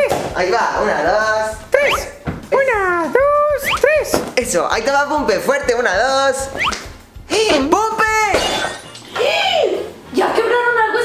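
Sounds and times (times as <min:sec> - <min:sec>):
glass vase shattering: 0:08.3 - 0:09.2.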